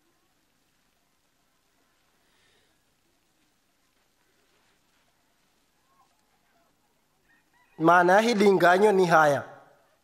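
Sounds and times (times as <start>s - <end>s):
man speaking loudly: 7.8s - 9.7s.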